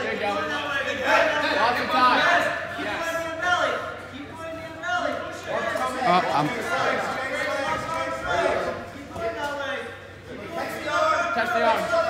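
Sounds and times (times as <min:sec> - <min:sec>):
voices calling out in a gym: 0:00.0 - 0:12.0.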